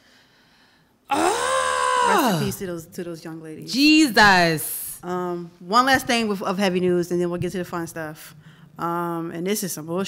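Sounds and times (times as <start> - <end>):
woman's high exclamation of dismay: 1.1 - 2.6.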